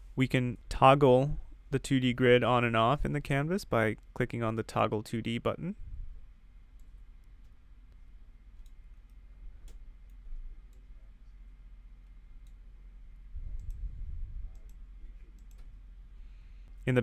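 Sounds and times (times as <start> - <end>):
low steady hum: 0.0 - 17.0
computer mouse clicking: 8.6 - 10.9, 12.0 - 12.6, 14.5 - 15.8
low rumble: 13.2 - 15.1.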